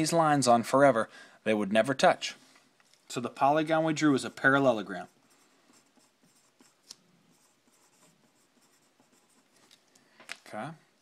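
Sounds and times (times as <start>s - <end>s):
pen scratching on paper: 4.0s - 9.6s.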